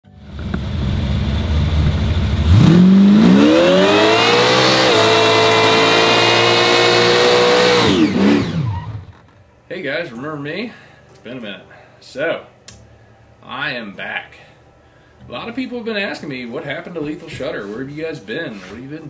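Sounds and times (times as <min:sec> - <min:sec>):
car engine revving: 0:00.2 - 0:09.2
tyres burning out: 0:00.2 - 0:09.4.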